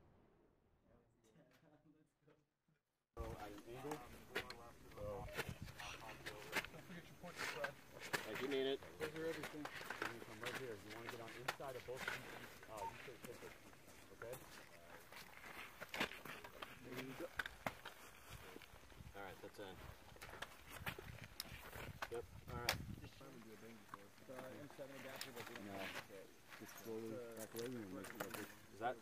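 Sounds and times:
footsteps: 3.2s - 28.7s.

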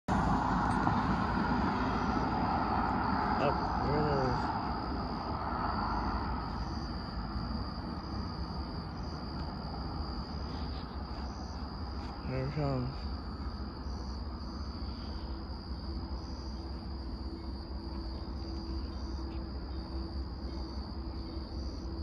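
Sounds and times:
car driving past: 0.1s - 10.2s
high insect trill: 0.1s - 22.0s.

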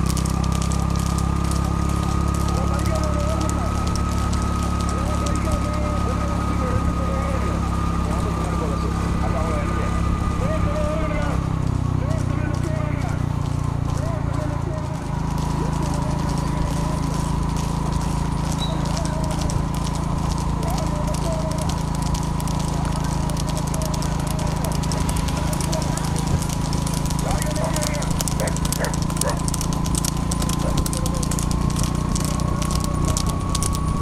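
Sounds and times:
hooves clattering on asphalt: 0.0s - 34.0s
steady engine hum: 0.0s - 34.0s.

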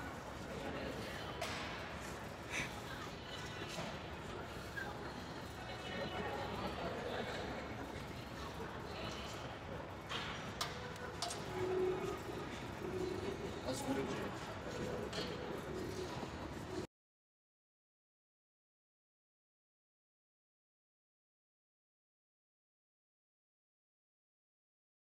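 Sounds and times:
indistinct chatter: 0.0s - 16.9s.

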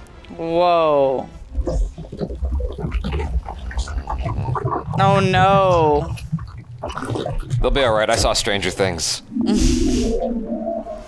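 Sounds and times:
deep steady rumble: 1.2s - 11.0s
rasping grunts: 1.4s - 8.8s
monster growling and snarling: 1.5s - 8.4s.

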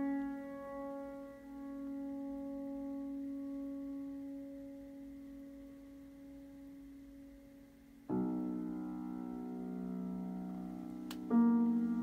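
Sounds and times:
ringing piano tone: 0.0s - 6.9s.

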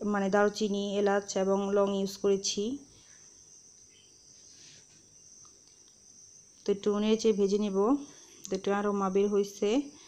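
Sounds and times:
woman's voice: 0.0s - 2.9s, 6.6s - 10.0s
faint high-pitched whine: 0.0s - 10.0s.

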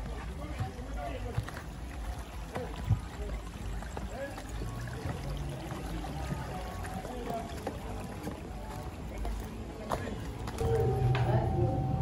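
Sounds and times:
water rushing in shallow stream: 0.0s - 10.8s.

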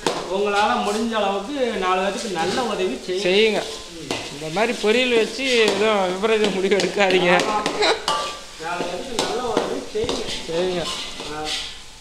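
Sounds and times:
food sizzling: 0.0s - 12.0s
metal ladle scraping a pan: 2.1s - 12.0s
metal clinking on pan: 5.5s - 11.8s.

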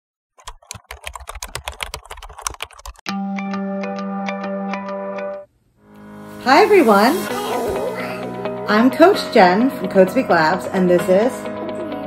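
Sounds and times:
keyboard typing clicks: 0.4s - 3.0s.

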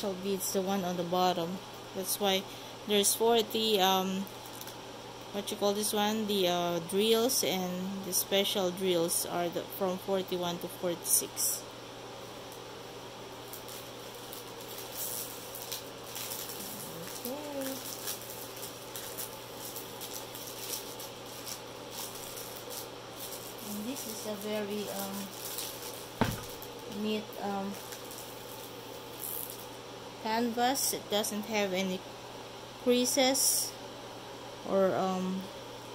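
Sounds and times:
low background hum: 0.0s - 35.9s
plastic film rustling: 4.1s - 4.8s, 13.4s - 29.8s.

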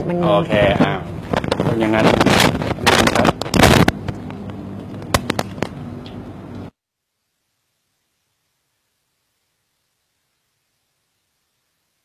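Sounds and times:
steady low hum: 0.0s - 12.0s
sharp pops or knocks: 0.7s - 6.2s.

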